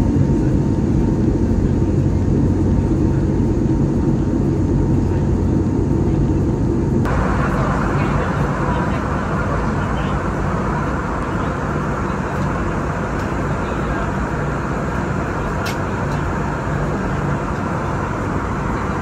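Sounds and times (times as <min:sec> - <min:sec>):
aircraft cabin engine hum: 0:00.0 - 0:19.0.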